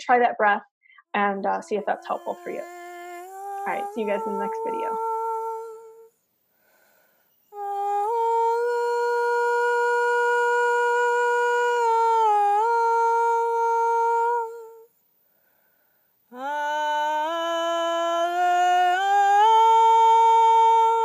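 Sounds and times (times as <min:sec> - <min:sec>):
high voice holding sung note: 0:01.2 - 0:05.8.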